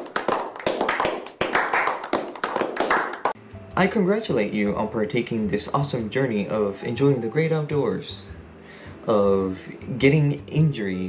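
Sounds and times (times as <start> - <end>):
people clapping: 0.0 - 3.4.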